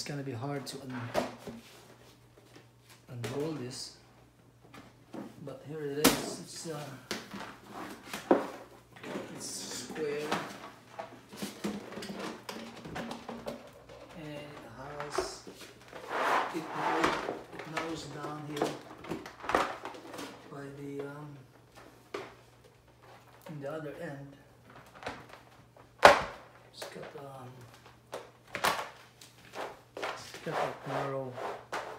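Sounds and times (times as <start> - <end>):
plastic mat crackling: 24.5 - 31.9.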